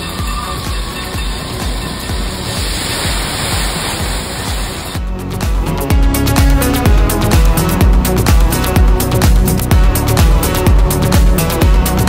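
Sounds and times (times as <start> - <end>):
background music with steady beat: 0.0 - 12.0
rush of water from tipping bucket: 1.3 - 5.0.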